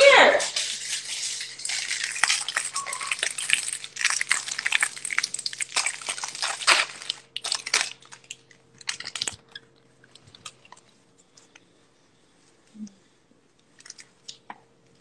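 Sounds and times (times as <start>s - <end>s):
close crunching and crackling: 0.4s - 11.7s.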